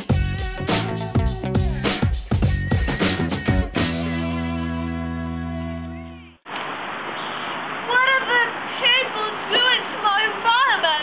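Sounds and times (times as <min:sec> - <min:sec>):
music: 0:00.0 - 0:06.4.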